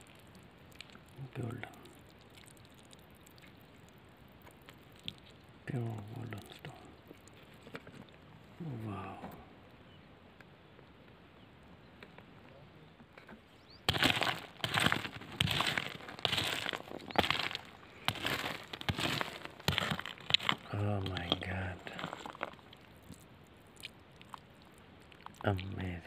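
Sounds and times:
rock pick scraping gravelly soil: 13.9s - 23.2s.

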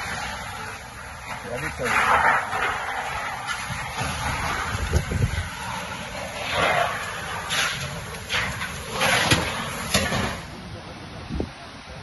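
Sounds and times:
wind buffeting microphone: 0.0s - 10.0s
gusty wind rushing: 0.0s - 12.0s.

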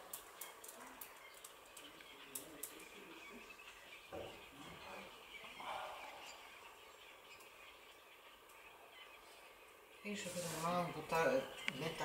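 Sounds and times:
faint distant bird calls: 0.0s - 12.0s.

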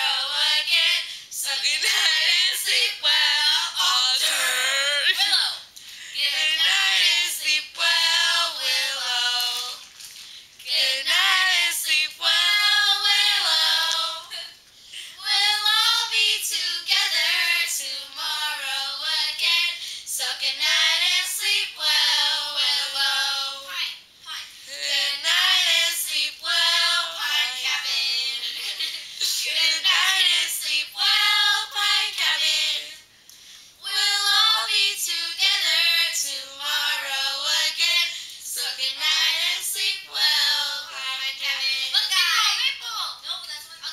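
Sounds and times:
girls singing unaccompanied: 0.0s - 5.4s, 6.2s - 9.8s, 10.6s - 14.5s, 15.2s - 33.1s, 33.8s - 42.3s.

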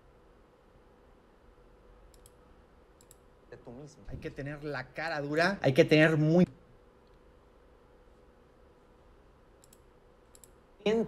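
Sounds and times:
faint computer clicks: 2.1s - 2.4s, 3.0s - 3.3s, 9.6s - 10.6s
man speaking: 3.5s - 6.6s.

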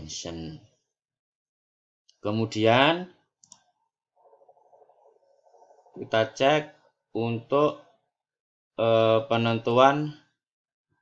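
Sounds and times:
computer mouse clicking: 3.4s - 3.7s.

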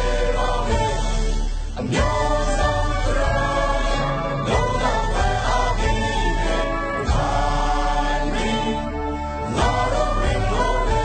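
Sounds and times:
instrumental backing with bass: 0.0s - 11.0s
voices singing held notes: 0.0s - 11.0s.

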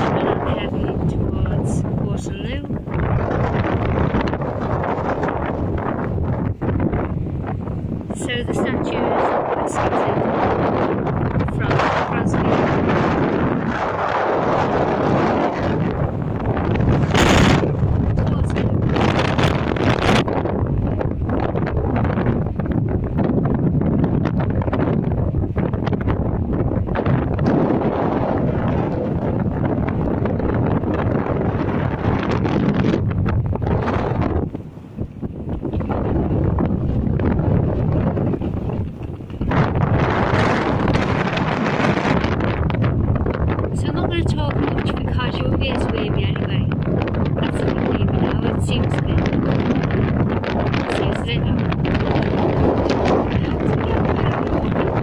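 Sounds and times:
wind buffeting microphone: 0.0s - 55.0s.

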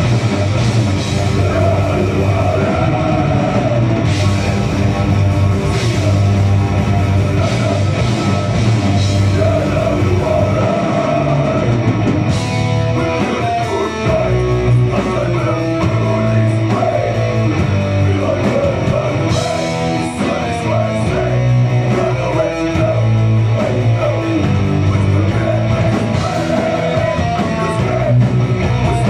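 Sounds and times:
drums: 0.0s - 29.0s
electric guitars riffing: 0.0s - 29.0s.

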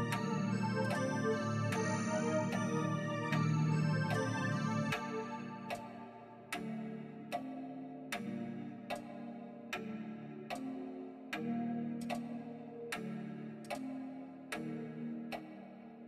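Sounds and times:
sustained synth melody: 0.0s - 7.6s.

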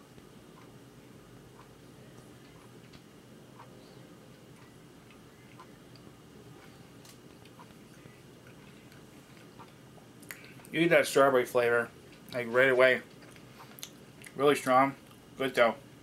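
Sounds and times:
low steady hum: 0.0s - 16.0s
person chewing: 13.1s - 14.4s.

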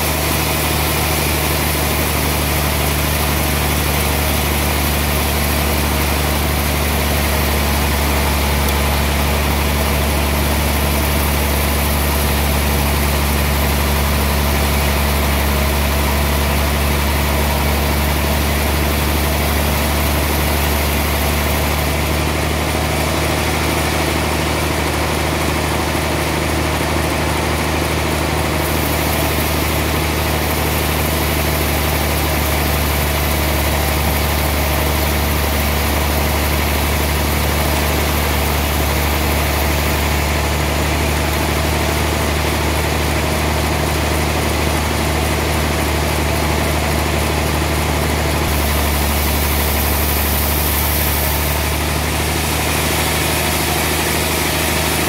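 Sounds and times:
band saw machine hum: 0.0s - 55.0s.

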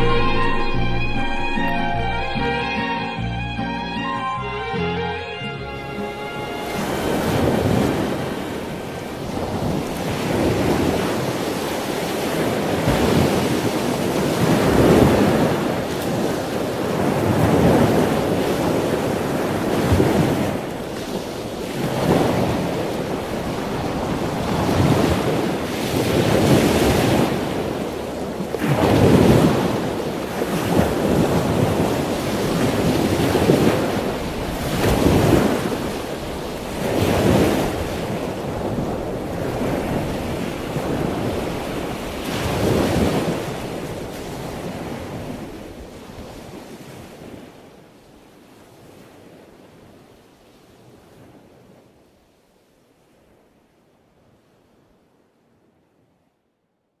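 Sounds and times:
sea waves breaking: 0.0s - 49.4s
wind: 0.0s - 57.0s.

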